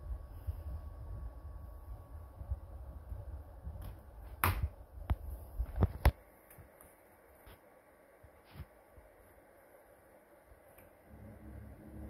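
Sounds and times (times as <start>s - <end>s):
low rumble: 11.1s - 12.0s.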